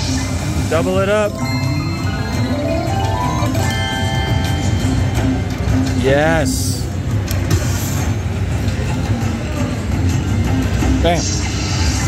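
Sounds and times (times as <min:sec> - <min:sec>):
slot machine reels spinning: 0:00.0 - 0:05.3
slot machine bonus music: 0:00.0 - 0:06.4.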